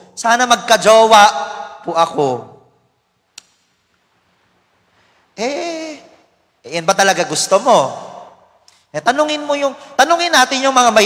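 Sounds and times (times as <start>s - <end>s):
sharp click: 3.3s - 3.7s.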